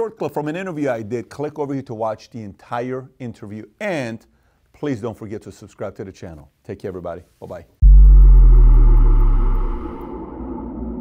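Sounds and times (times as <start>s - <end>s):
deep cinematic boom: 7.8s - 11.0s
low drone: 7.8s - 11.0s.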